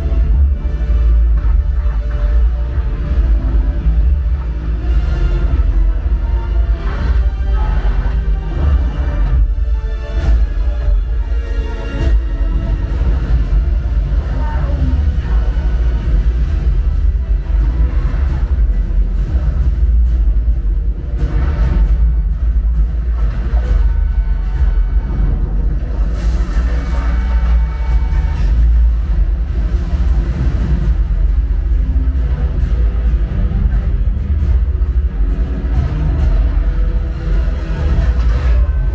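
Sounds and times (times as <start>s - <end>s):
deep bass rumble: 0.0s - 38.9s
film dialogue: 0.0s - 38.9s
film music: 0.0s - 38.9s.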